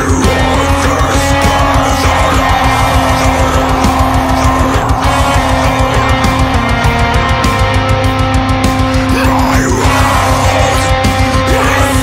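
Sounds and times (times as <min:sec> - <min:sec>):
distorted guitars: 0:00.0 - 0:12.0
drums: 0:00.0 - 0:12.0.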